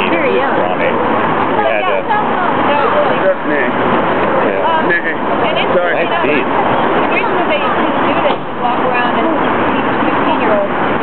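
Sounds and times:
overlapping voices chattering: 0:00.0 - 0:11.0.

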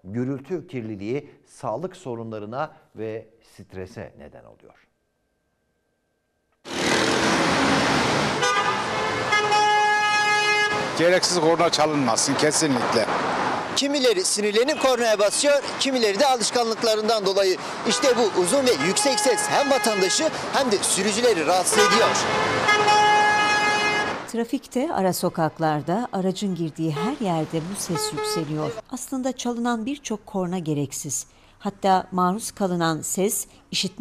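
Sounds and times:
city street traffic: 0:06.6 - 0:34.0
car horns honking: 0:06.7 - 0:12.0, 0:14.6 - 0:24.3, 0:26.8 - 0:28.8.

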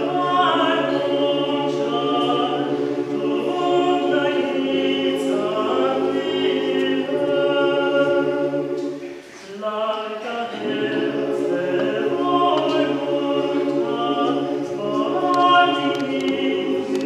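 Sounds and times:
mixed choir singing a cappella: 0:00.0 - 0:17.0.

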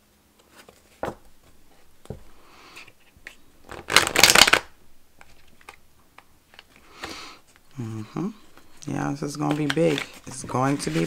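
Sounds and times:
cards riffle-shuffled: 0:00.4 - 0:11.0.

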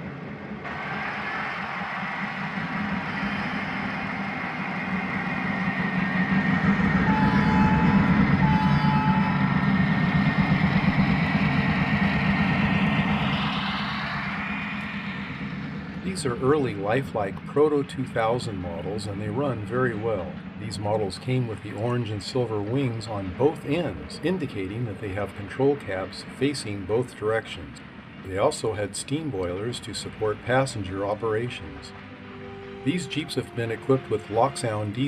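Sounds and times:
diesel engine hum: 0:00.0 - 0:35.0
train wheels rumbling on track: 0:00.3 - 0:35.0.

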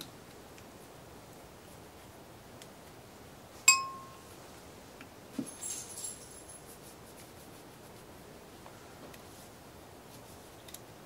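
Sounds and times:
sharp metallic clink: 0:03.7 - 0:04.2
light metallic rattle: 0:05.5 - 0:06.6.

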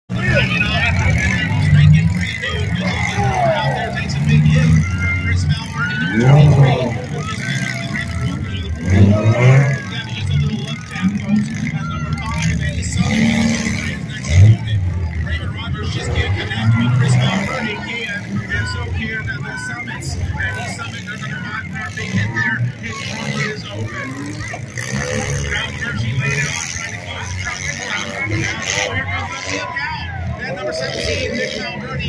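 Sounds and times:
car engines revving: 0:00.1 - 0:32.0.

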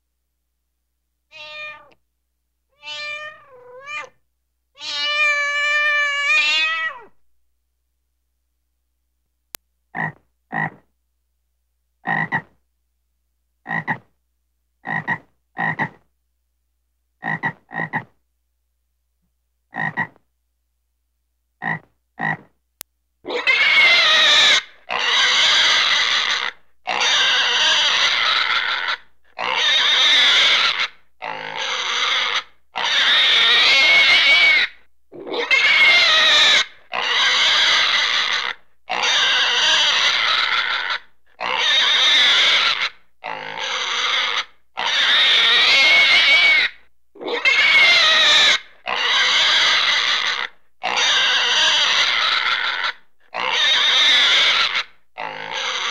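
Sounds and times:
short animal calls: 0:12.0 - 0:12.6, 0:14.8 - 0:16.0, 0:17.2 - 0:18.2, 0:19.7 - 0:20.2, 0:21.6 - 0:22.5, 0:23.3 - 0:55.9
long rough animal calls: 0:23.3 - 0:55.9.

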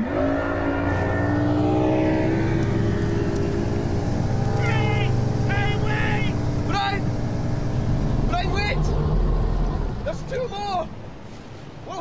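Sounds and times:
motorboat engine at high revs: 0:00.0 - 0:11.1
steady deep hum: 0:00.0 - 0:11.2.

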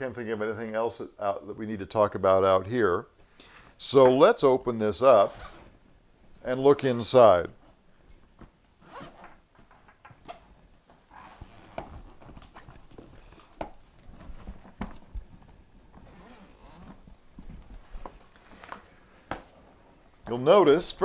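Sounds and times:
fabric rustling: 0:06.7 - 0:21.0
zipper being drawn open: 0:08.8 - 0:09.3, 0:11.1 - 0:12.3, 0:16.0 - 0:17.0.

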